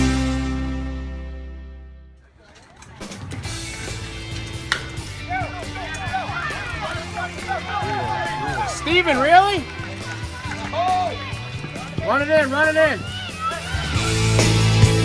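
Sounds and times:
rock music: 0.0s - 1.9s, 3.0s - 15.0s
spectators yelling and cheering: 2.3s - 15.0s
baseball bat hitting ball: 3.0s - 7.2s.

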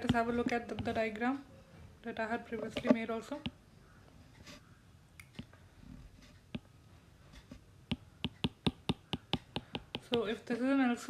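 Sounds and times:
stylus tapping on a screen: 0.0s - 1.1s, 7.9s - 10.4s.

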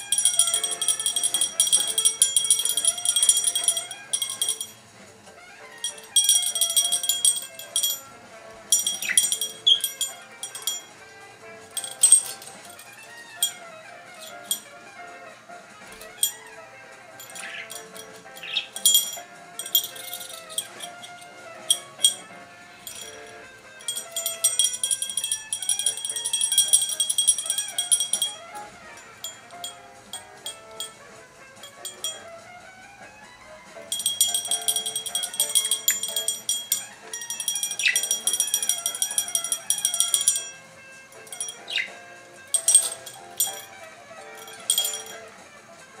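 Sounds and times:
small bells jingling: 0.0s - 4.9s, 5.7s - 15.2s, 15.8s - 32.5s, 33.2s - 46.0s
background music: 0.0s - 46.0s.

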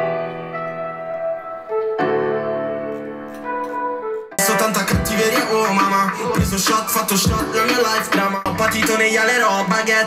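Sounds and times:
sustained piano chords: 0.0s - 7.7s.

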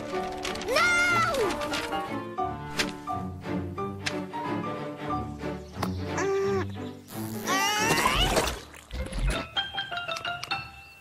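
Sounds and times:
plinking musical notes: 9.3s - 11.0s.

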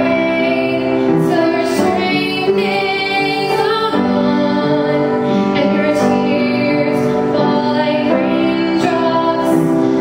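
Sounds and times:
woman singing gospel: 0.0s - 10.0s.

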